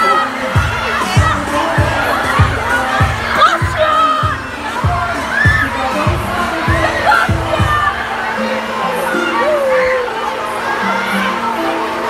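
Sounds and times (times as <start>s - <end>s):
children shouting and squealing: 0.0s - 12.0s
music with kick-drum beat: 0.6s - 7.9s.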